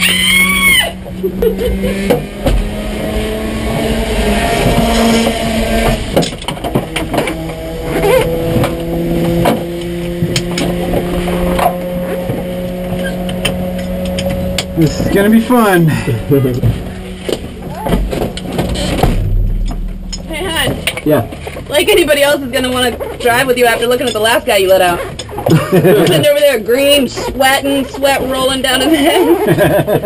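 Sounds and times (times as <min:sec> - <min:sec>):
car engine idling: 0:00.0 - 0:29.5.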